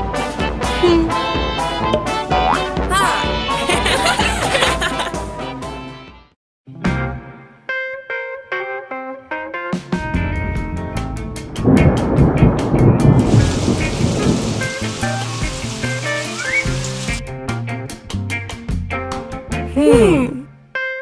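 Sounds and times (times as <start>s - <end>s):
background music: 0.0s - 21.0s
thunder rumble: 10.2s - 17.1s
rain hiss: 13.0s - 17.2s.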